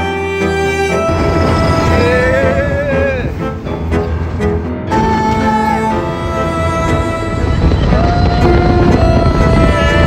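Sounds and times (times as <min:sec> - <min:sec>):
background music sustained tones: 0:00.0 - 0:10.0
steady low rumble: 0:01.0 - 0:10.0.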